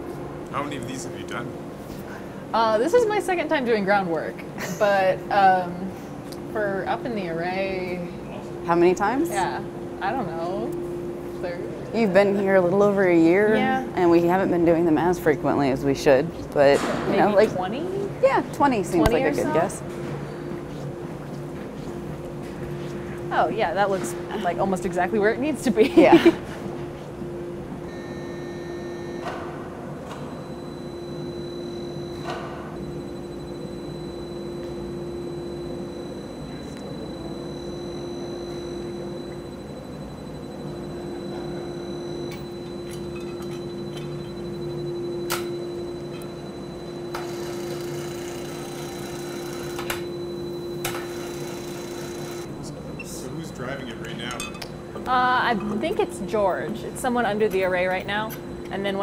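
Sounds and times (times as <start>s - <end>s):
low machine hum: 0.0s - 59.0s
faint high whine: 30.3s - 54.4s.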